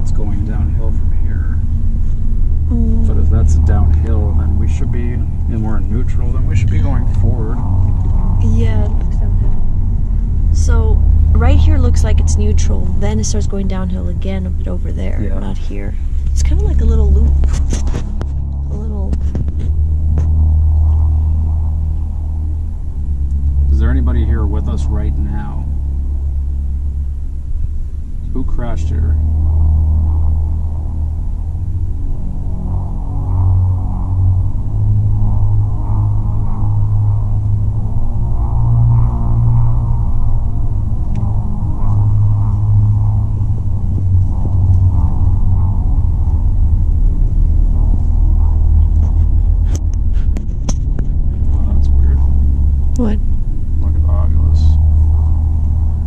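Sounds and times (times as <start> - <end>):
car cabin low rumble: 0.0 - 56.0.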